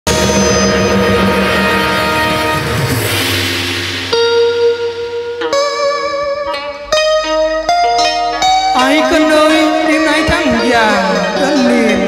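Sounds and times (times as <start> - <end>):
sustained chord backing music: 0.1 - 12.0.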